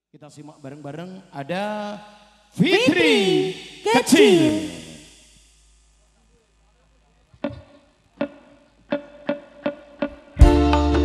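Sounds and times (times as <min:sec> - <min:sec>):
sharp struck note: 0:00.6 - 0:05.6.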